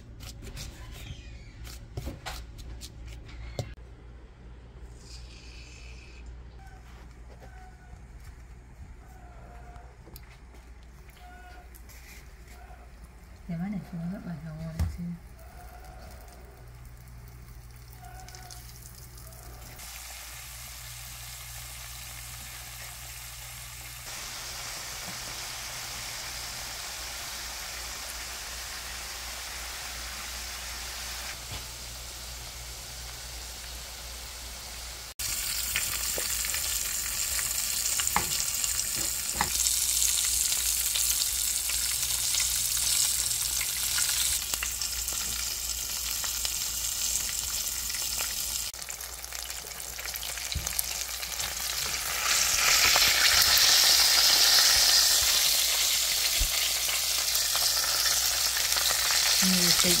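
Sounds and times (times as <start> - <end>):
food sizzling in hot oil: 16.8 - 60.0.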